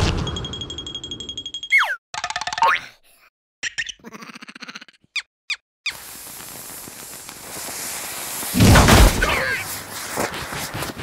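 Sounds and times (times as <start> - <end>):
high ringing tone: 0.1 - 1.8
squeaky cartoon vocalizations: 3.6 - 5.6
steady hiss of burning: 5.9 - 10.7.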